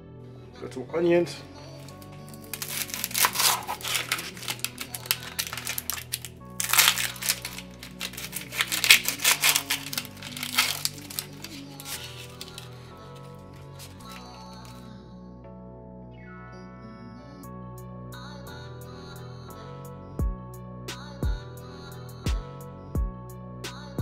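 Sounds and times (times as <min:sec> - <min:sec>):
background music: 0:00.0 - 0:24.0
onion skin crackling: 0:01.8 - 0:14.8.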